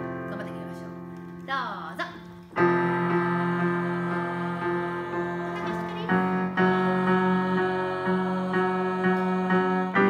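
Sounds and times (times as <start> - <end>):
group singing sustained tone: 2.6 - 10.0.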